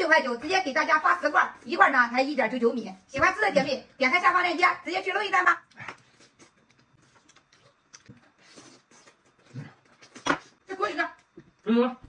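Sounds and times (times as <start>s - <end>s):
person chewing and smacking: 5.7s - 10.6s.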